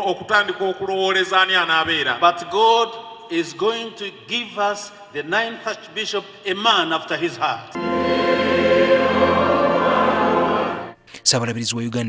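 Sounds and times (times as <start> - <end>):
church choir singing: 7.1 - 11.1.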